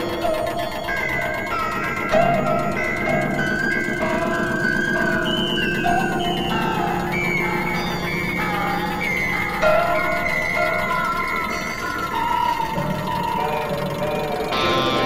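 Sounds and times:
experimental electronic music: 0.0s - 15.0s
steady low drone: 0.0s - 15.0s.

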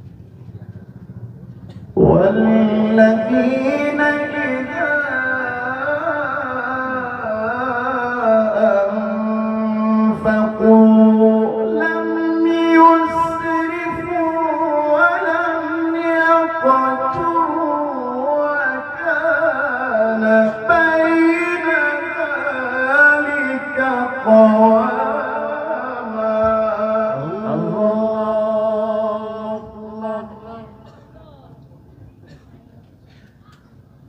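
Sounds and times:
man chanting recitation: 1.9s - 31.8s.

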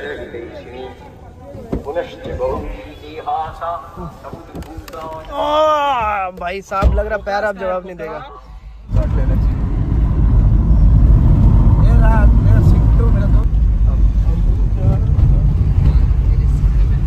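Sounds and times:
car engine and road noise: 6.3s - 17.0s.

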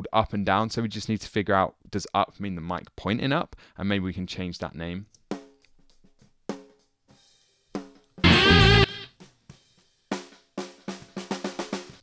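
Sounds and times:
snare drum hits: 8.2s - 9.1s
faint drum kit spill: 8.2s - 9.5s.

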